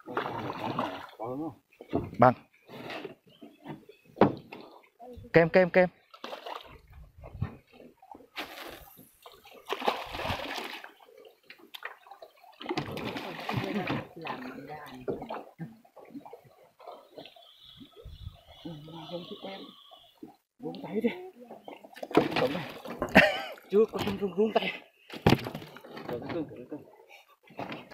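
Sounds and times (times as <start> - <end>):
water splashing: 0.0 - 1.5, 6.0 - 20.4, 21.6 - 24.3.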